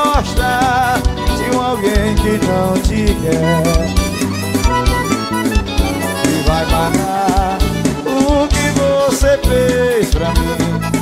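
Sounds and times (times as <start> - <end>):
accordion melody: 0.0 - 11.0
bass: 0.0 - 11.0
steady drum beat: 0.0 - 11.0.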